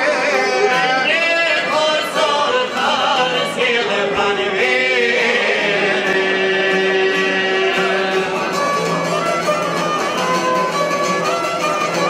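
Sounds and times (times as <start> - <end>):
male voices singing together: 0.0 - 8.4
fiddle: 0.0 - 12.0
long-necked lutes: 0.0 - 12.0.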